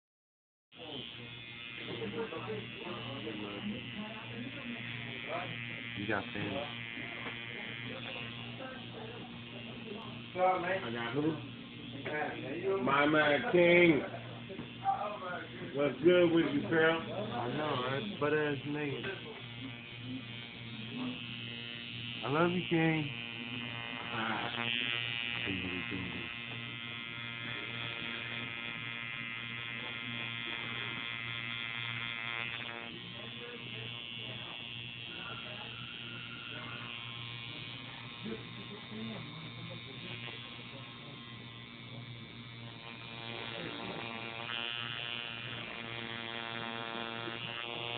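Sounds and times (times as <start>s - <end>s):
tattoo machine buzzing: 0.7s - 47.9s.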